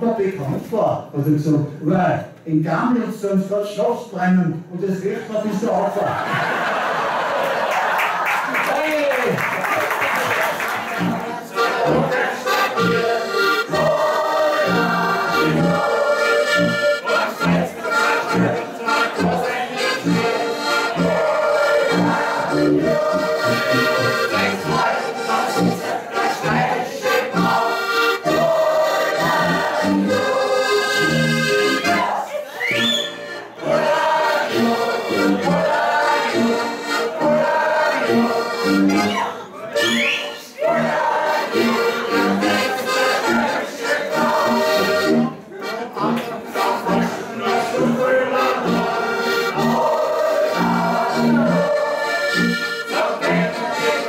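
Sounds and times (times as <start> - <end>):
button accordions playing: 9.8 - 54.0
tuba oom-pah beat: 9.8 - 54.0.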